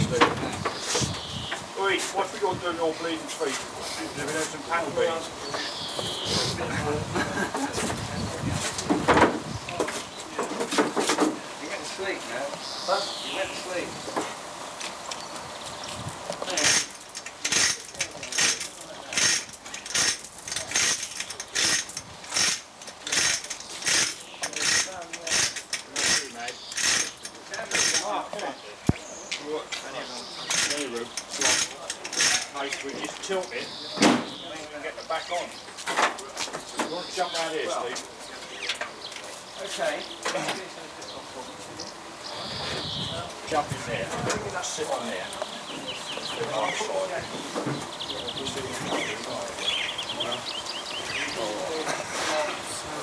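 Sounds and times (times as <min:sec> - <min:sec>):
low voices: 0:00.0 - 0:14.6, 0:22.9 - 0:53.0
chain hoist clicking: 0:16.5 - 0:28.1, 0:30.5 - 0:32.6.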